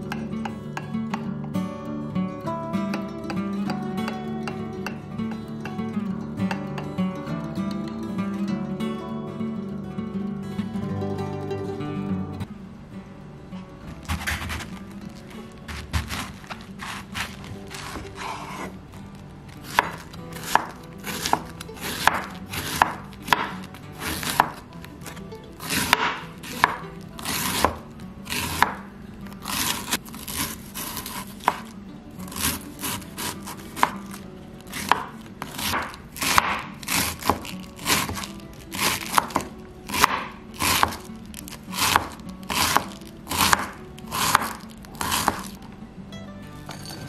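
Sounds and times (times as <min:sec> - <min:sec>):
knife slicing cabbage: 0:14.0 - 0:18.8, 0:19.6 - 0:45.6.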